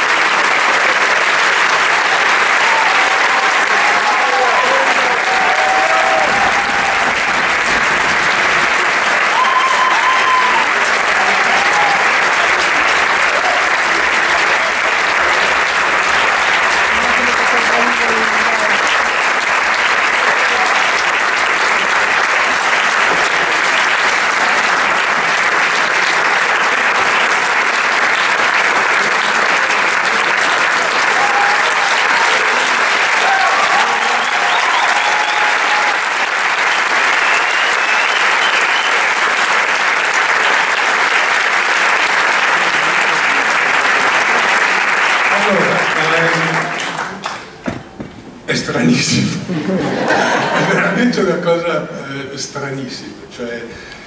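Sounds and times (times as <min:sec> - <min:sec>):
audience applauding: 0:00.0 - 0:51.3.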